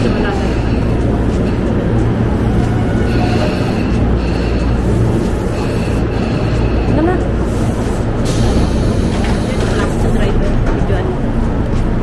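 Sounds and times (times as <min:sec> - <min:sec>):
train low hum: 0:00.0 - 0:12.0
air hiss of doors opening: 0:03.1 - 0:10.3.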